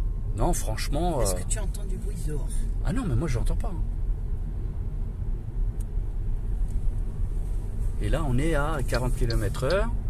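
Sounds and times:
road and tyre rumble: 0.0s - 10.0s.

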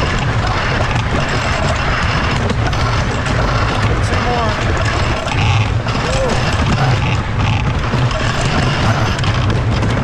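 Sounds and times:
roller coaster wheels rumbling: 0.0s - 10.0s.

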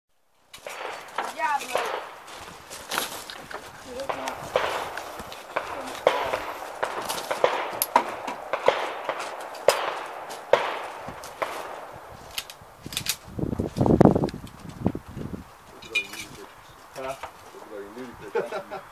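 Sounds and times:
bullets ringing on steel targets: 0.6s - 2.4s, 4.0s - 12.1s
pistol shots: 0.6s - 2.4s, 4.0s - 13.1s.

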